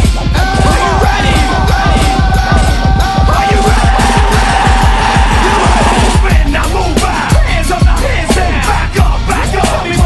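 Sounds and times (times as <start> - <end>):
hip hop beat: 0.0 - 10.0.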